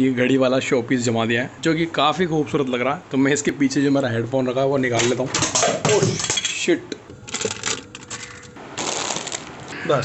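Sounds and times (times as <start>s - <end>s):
small hard pieces clinking: 7.3s - 9.5s.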